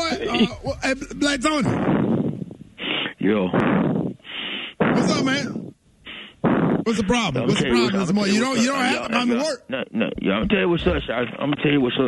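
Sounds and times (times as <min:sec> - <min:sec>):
breathy rasping noises over phone: 0:01.7 - 0:05.1, 0:06.0 - 0:07.0
person talking in studio: 0:06.5 - 0:12.0.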